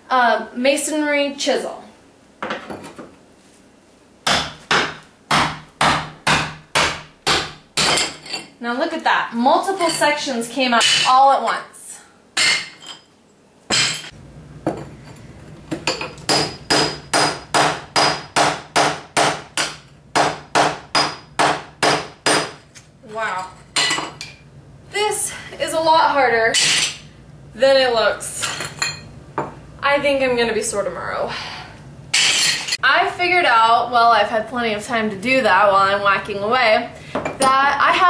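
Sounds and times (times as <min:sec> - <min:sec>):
hammer striking metal chisel: 0:04.3 - 0:08.4, 0:15.9 - 0:22.6.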